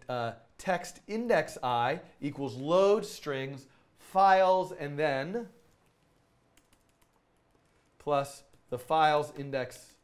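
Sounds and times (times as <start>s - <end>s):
typing on laptop keyboard: 5.7s - 7.9s.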